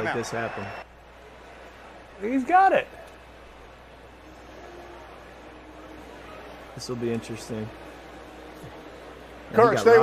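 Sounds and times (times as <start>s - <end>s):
faint stadium crowd noise: 0.0s - 10.0s.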